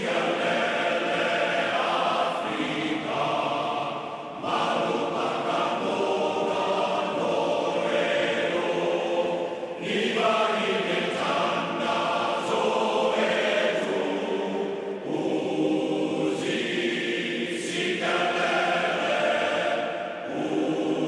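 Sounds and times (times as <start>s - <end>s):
choir singing: 0.0s - 21.0s.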